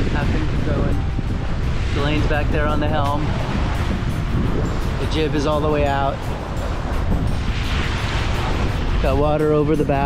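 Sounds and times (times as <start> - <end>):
water splashing along hull: 0.0 - 10.0
wind buffeting microphone: 0.0 - 10.0.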